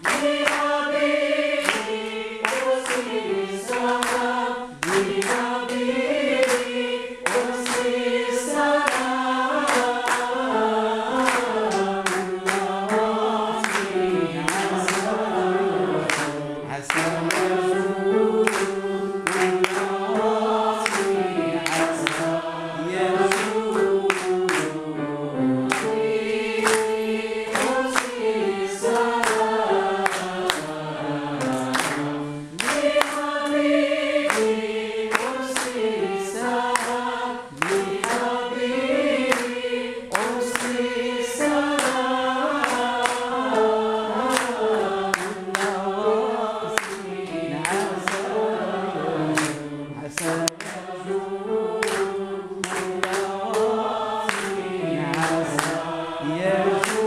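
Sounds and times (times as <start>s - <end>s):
choir singing in unison: 0.0s - 57.0s.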